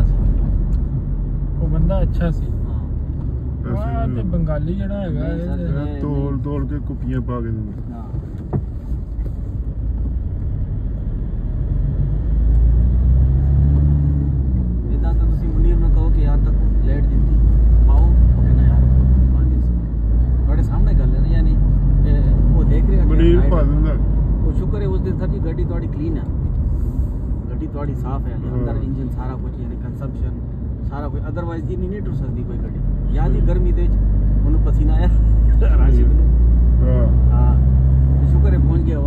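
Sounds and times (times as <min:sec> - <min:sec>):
car engine and road rumble: 0:00.0 - 0:39.0.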